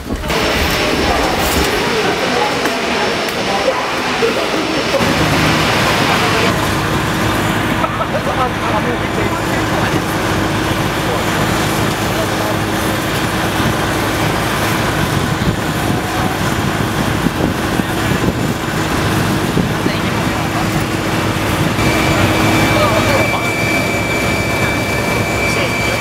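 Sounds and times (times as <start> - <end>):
engine and machinery noise: 0.0 - 26.0
steady hum: 0.0 - 26.0
thin high whine: 0.1 - 14.3, 19.5 - 26.0.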